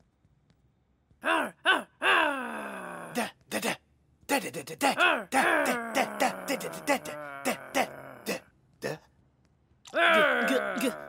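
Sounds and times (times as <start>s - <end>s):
cartoon voice growling arr: 1.2s - 3.4s, 4.8s - 8.4s, 9.9s - 11.0s.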